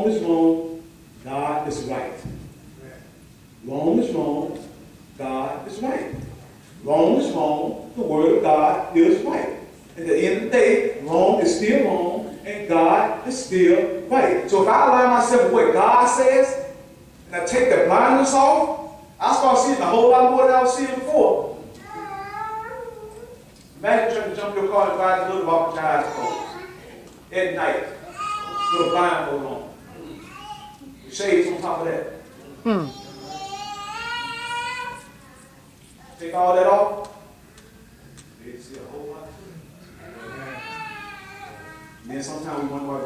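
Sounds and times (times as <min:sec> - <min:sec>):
man preaching: 0:00.0 - 0:02.2, 0:03.6 - 0:21.7, 0:23.8 - 0:30.2, 0:31.1 - 0:33.4, 0:36.2 - 0:37.2, 0:42.0 - 0:43.0
man speaking: 0:00.0 - 0:06.2, 0:06.8 - 0:21.7, 0:23.8 - 0:30.3, 0:31.0 - 0:33.4, 0:36.2 - 0:37.2, 0:41.5 - 0:43.0
high-pitched child's cry: 0:21.8 - 0:23.1, 0:26.0 - 0:26.8, 0:28.0 - 0:29.1, 0:40.0 - 0:42.0.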